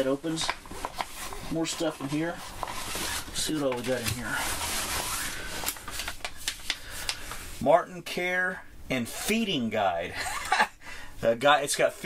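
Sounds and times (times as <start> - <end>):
paper rustling: 0.0 - 7.5.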